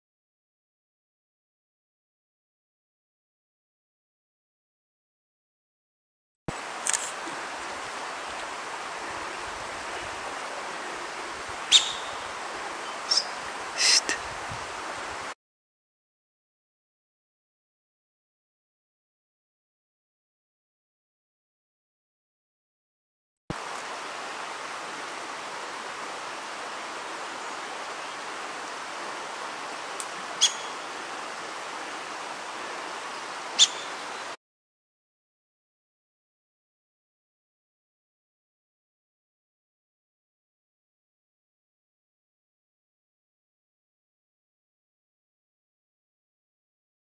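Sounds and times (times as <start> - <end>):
steady rushing hiss: 6.5 - 15.4, 23.5 - 34.4
high bird chirps: 11.7 - 14.2, 30.4 - 30.8, 33.6 - 34.0.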